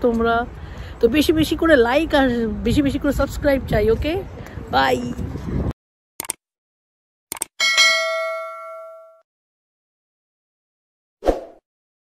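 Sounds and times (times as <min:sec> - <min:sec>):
bright bell ding: 0:07.6 - 0:09.2.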